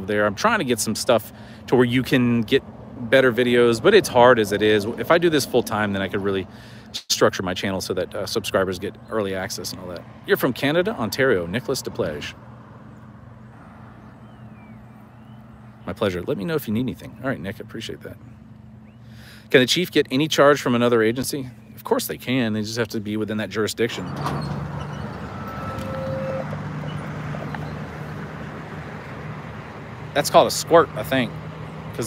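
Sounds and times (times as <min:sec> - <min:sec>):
vehicle engine humming: 0:00.0 - 0:32.0
car passing: 0:09.6 - 0:15.8, 0:24.0 - 0:32.0
faint sliding whistle: 0:25.0 - 0:27.8.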